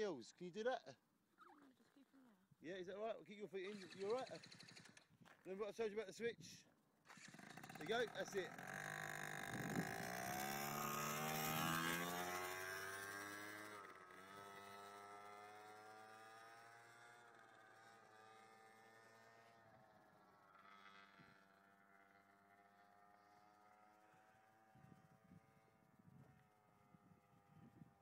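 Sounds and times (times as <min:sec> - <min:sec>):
small quad bike engine: 0:03.6 - 0:05.2, 0:07.0 - 0:28.0.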